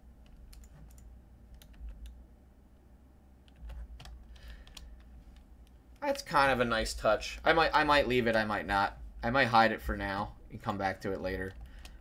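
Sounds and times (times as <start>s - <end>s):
low steady hum: 0.0s - 12.0s
computer keyboard clicks: 3.5s - 5.1s.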